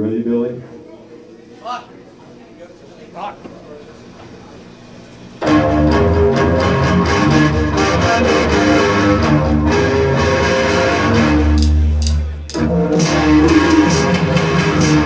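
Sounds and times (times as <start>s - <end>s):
live band playing loud music: 5.4s - 15.0s.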